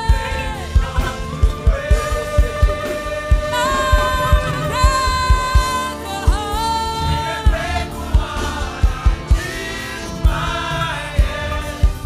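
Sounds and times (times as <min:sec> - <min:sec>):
kick drum beat: 0:00.0 - 0:12.0
voices singing gospel song: 0:00.0 - 0:12.0.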